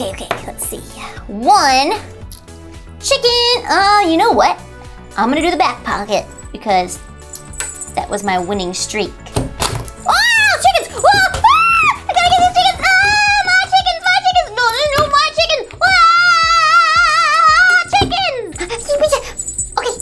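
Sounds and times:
background music: 0.0 - 20.0
high-pitched wordless singing: 10.0 - 20.0.

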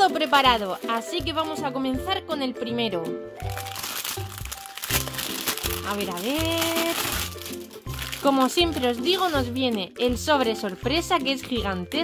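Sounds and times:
plastic foil crinkling: 0.0 - 1.6, 3.4 - 11.4.

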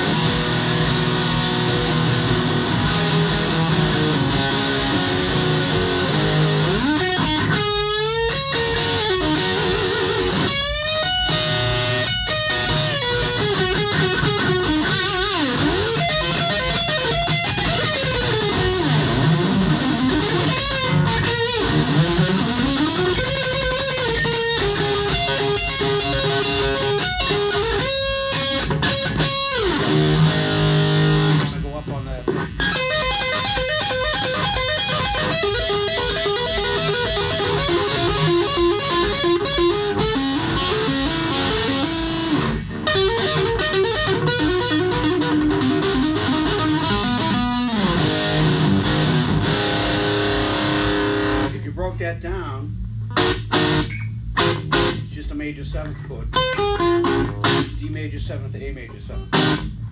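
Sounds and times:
overdriven electric guitar lead: 0.0 - 59.9.

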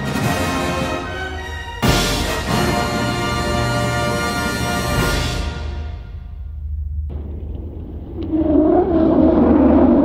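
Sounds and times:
spacecraft engine droning rumble: 6.4 - 10.0.

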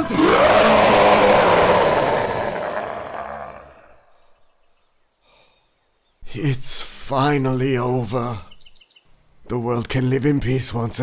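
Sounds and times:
person screaming: 0.0 - 3.8
loud rushing roar: 0.0 - 3.9.

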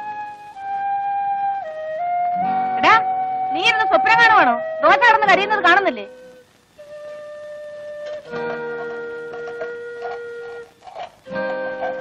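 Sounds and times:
flute holding long note: 0.0 - 12.0.

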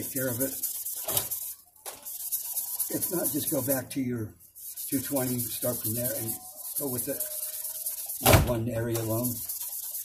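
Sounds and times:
sanding metal frets: 0.0 - 4.0, 4.6 - 10.0.

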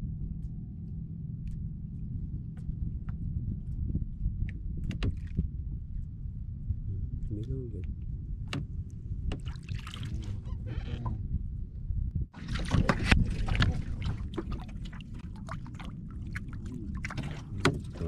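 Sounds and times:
steady low rumble: 0.0 - 18.0
water lapping against boat hull: 4.4 - 6.0, 8.4 - 11.2, 12.3 - 18.0.

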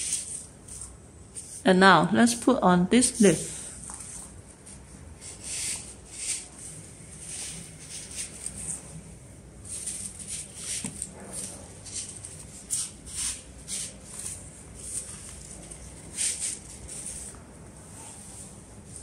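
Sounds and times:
artificial leaves rustling: 0.0 - 1.7, 3.0 - 19.0.

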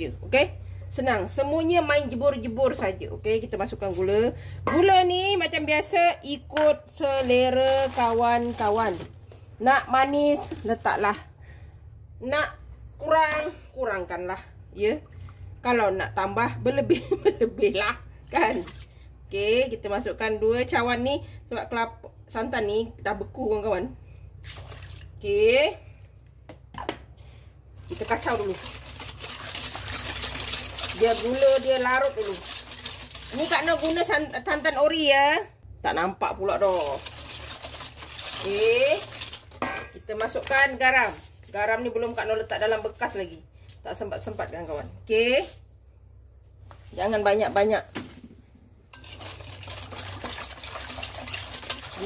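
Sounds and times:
whisk clinking on metal bowl: 27.9 - 34.1, 36.7 - 40.0, 48.9 - 52.0.

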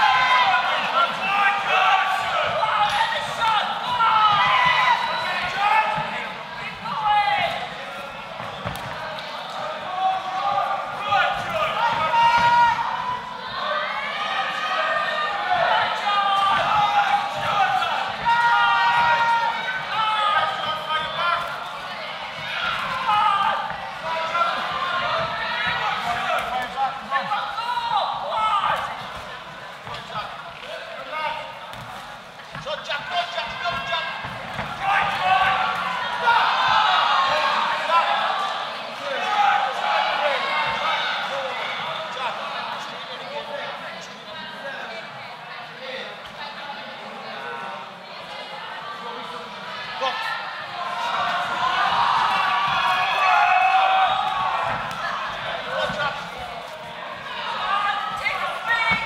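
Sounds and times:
crowd shouting: 0.0 - 31.8, 32.6 - 42.8, 48.4 - 59.0.

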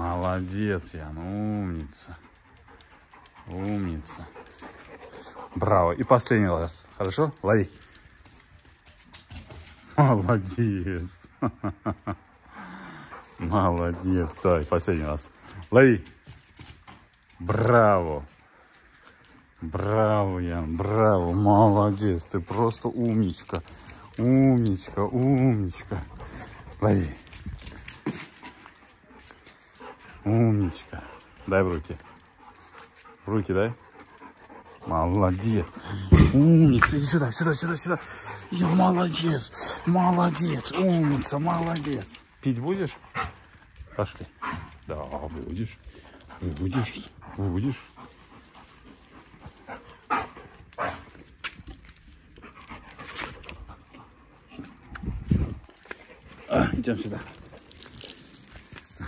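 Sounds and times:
dog panting: 0.0 - 9.8, 12.3 - 17.7, 18.3 - 59.0.

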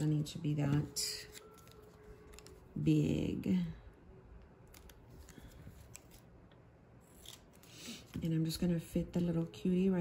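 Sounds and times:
scissors snipping paper: 4.7 - 6.3, 7.1 - 7.7.

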